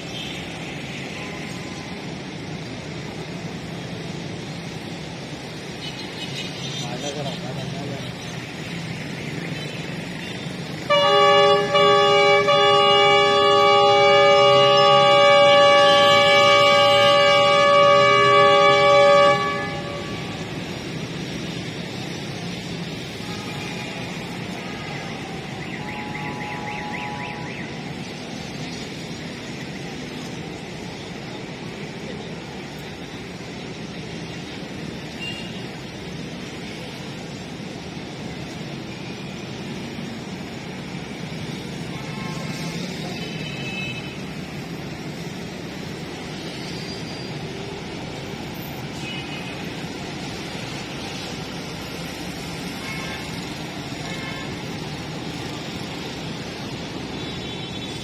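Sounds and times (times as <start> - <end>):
locomotive engine rumble: 9.8 - 35.2
locomotive air horn blast: 10.8 - 20.8, 52.7 - 55.2.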